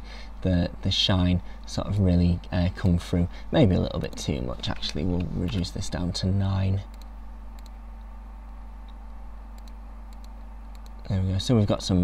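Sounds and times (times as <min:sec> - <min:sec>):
low electrical hum: 0:00.0 - 0:12.0
faint computer clicks: 0:06.9 - 0:11.1.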